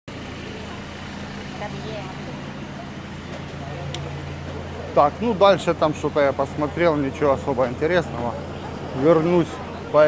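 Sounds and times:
faint voices of passers-by: 0.1s - 10.0s
vehicle engine idling: 0.1s - 10.0s.

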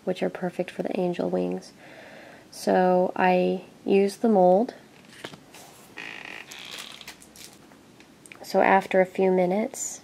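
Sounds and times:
soft rubbing sounds: 5.0s - 7.6s.

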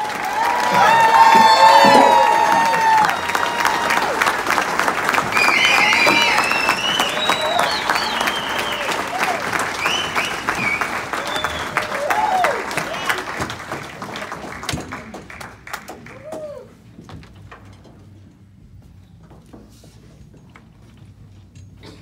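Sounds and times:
audience applauding: 0.0s - 16.8s
whoops and shouts: 0.2s - 4.2s, 5.3s - 9.5s, 11.2s - 13.1s, 16.1s - 16.8s.

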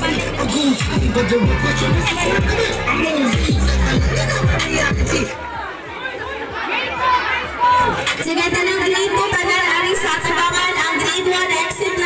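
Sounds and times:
young children chattering: 0.0s - 12.0s
children calling out: 0.2s - 8.1s.

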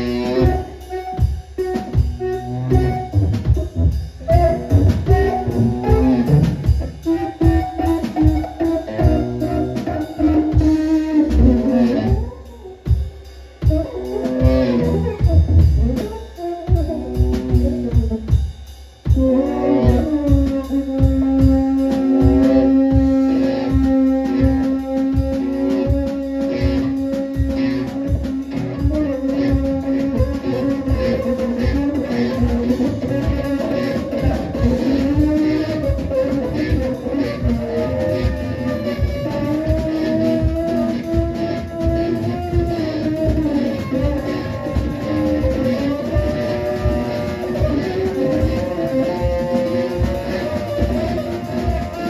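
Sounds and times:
drum kit: 0.0s - 52.0s
electric guitar: 0.0s - 52.0s
steady low drum beat: 0.0s - 52.0s.

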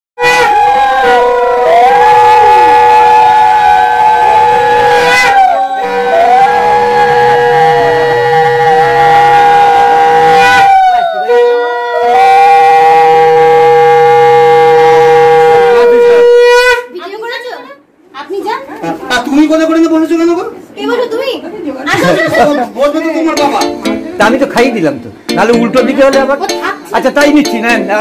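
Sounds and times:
conch shells blown: 0.2s - 11.6s.

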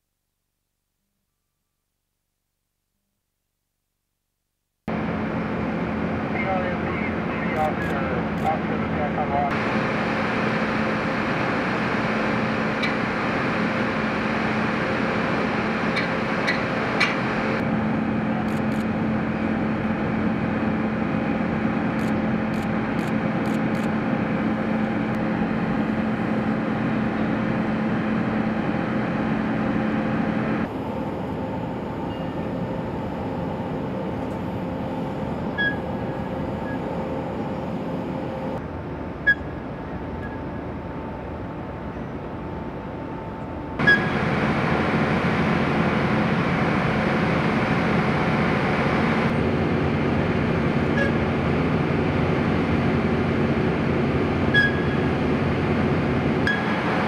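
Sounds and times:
heavy machinery drone: 4.9s - 57.0s.

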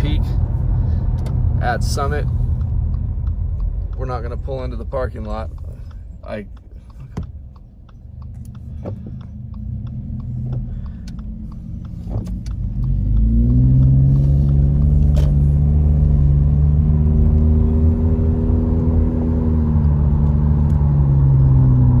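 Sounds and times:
car engine and road noise: 0.0s - 22.0s.

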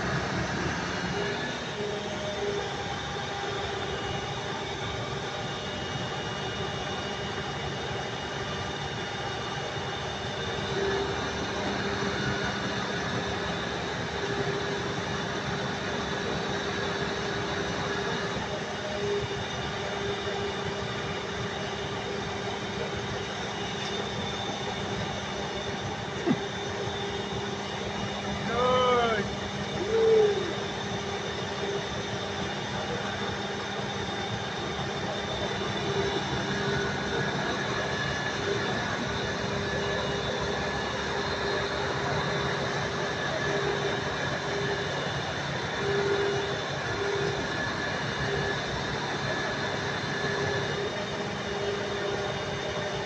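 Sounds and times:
hydraulic crane engine hum: 0.0s - 53.0s.

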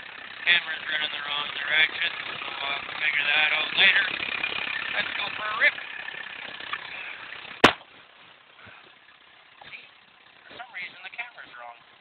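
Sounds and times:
car engine idling: 0.0s - 12.0s.

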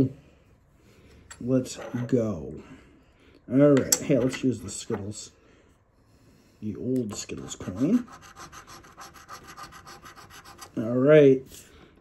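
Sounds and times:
coin scratching lottery ticket: 7.4s - 10.8s.

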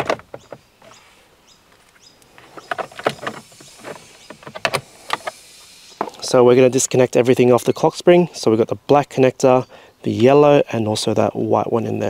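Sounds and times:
light clicks and knocks: 1.7s - 5.4s.

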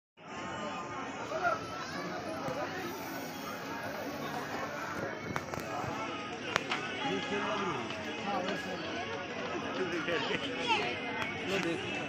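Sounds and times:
people chattering: 0.2s - 12.0s.

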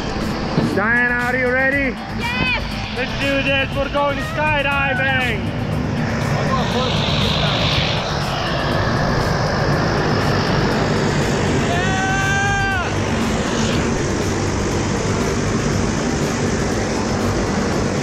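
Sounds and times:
propeller plane engine drone: 0.0s - 18.0s
person cheering: 11.6s - 13.0s.

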